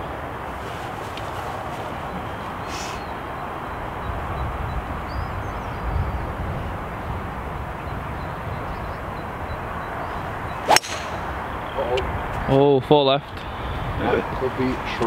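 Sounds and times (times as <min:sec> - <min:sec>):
low background noise: 0:00.0 - 0:15.0
golf club striking ball: 0:10.6 - 0:11.4.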